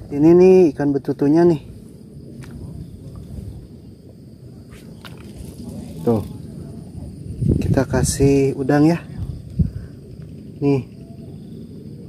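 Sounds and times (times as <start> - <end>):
low rumble on microphone: 1.5 - 12.0.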